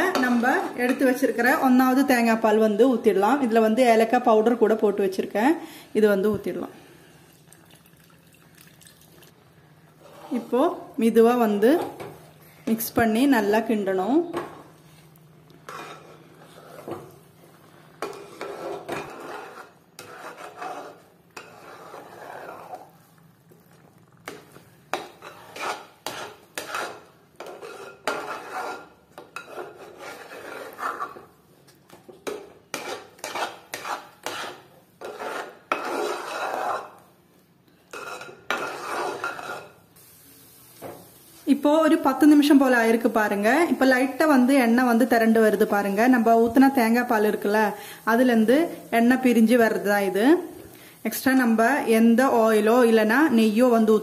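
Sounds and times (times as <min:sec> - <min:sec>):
liquid pouring into a pan: 0:07.2 - 0:09.4
metal spoon scraping a pot: 0:15.7 - 0:17.0, 0:18.0 - 0:23.0, 0:24.3 - 0:31.4, 0:32.2 - 0:37.0, 0:37.9 - 0:39.8.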